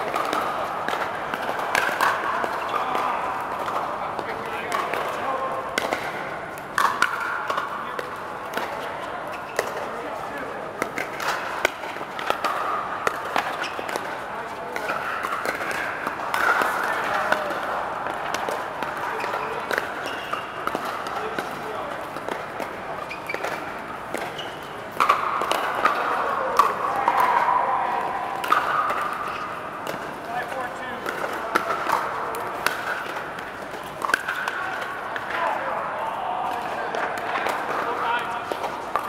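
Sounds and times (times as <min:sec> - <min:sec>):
paddles striking plastic balls: 0:00.0 - 0:35.6, 0:36.4 - 0:39.0
players talking: 0:00.0 - 0:39.0.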